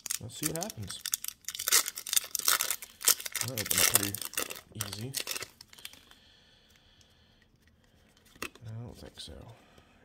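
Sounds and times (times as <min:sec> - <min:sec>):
cards being handled: 0:00.0 - 0:06.1
foil wrapper crinkling: 0:00.0 - 0:06.1.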